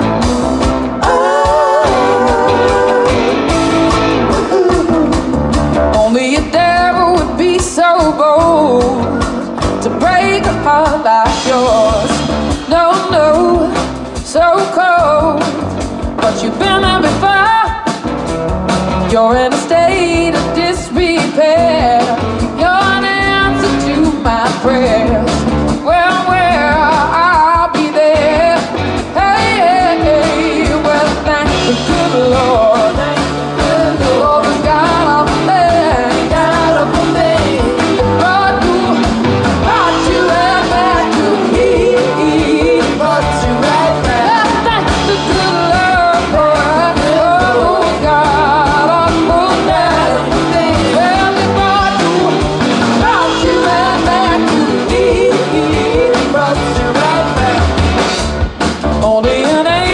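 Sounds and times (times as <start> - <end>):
drum kit: 0.0 - 59.9
electric guitar: 0.0 - 59.9
upright bass: 0.0 - 59.9
woman singing: 1.0 - 3.6, 5.9 - 15.6, 16.2 - 18.0, 19.0 - 57.8, 59.0 - 59.9.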